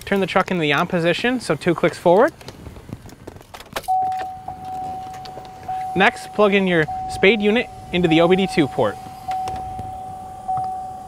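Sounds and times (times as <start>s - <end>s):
truck warning chime: 3.9s - 11.0s.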